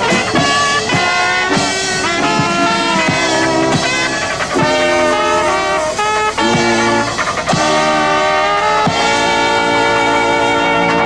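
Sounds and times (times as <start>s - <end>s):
clarinet: 0.0s - 11.0s
drum kit: 0.0s - 11.0s
trombone: 0.0s - 11.0s
trumpet: 0.0s - 11.0s.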